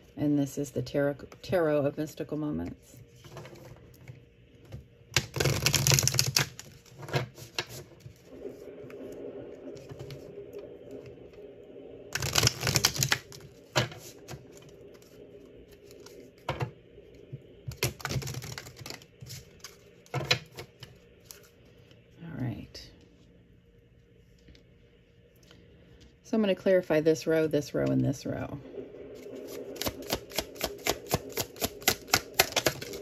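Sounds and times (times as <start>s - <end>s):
cards being shuffled: 5.2s - 8.2s, 12.2s - 15.2s, 17.7s - 21.6s, 29.3s - 33.0s.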